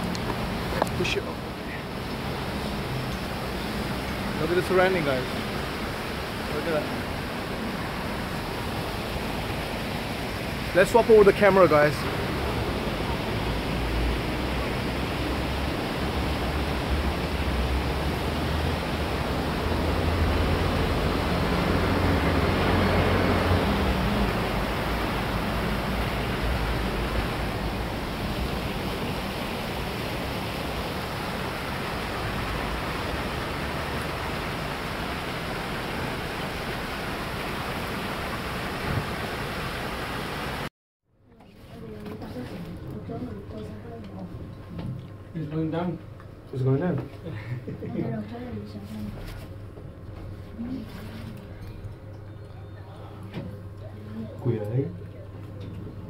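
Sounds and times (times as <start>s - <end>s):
fountain water splashing: 0.0s - 40.7s.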